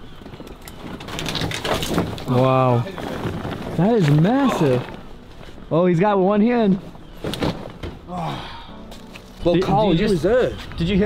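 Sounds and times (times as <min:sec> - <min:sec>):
heavy fabric bag rustling and scraping: 0:00.8 - 0:05.8.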